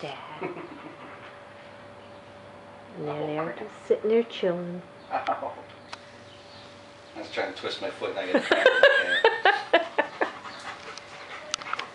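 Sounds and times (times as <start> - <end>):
dog panting: 0.6 - 1.5, 9.6 - 11.9.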